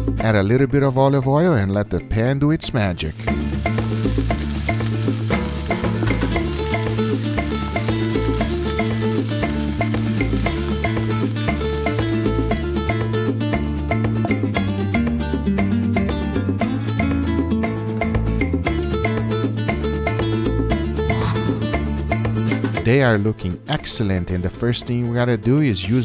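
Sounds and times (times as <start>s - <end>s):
background music with bass line: 0.0s - 26.0s
meat sizzling in a pan: 3.1s - 13.4s.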